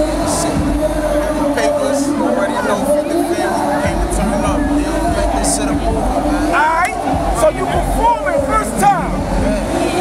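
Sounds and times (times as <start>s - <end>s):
men talking: 0.0s - 9.9s.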